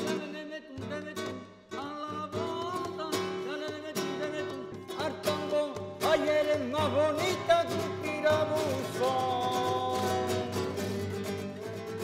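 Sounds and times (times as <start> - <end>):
man singing flamenco: 0.0 - 12.0
spanish guitar: 0.0 - 12.0.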